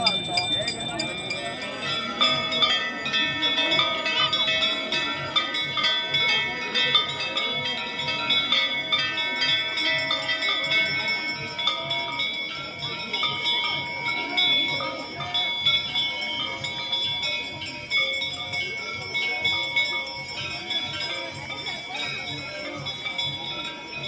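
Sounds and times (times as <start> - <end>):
temple bells ringing: 0.0 - 24.0.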